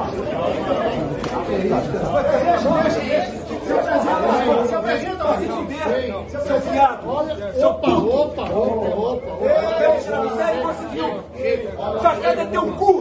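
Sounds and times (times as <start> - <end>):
men shouting and arguing: 0.0 - 13.0.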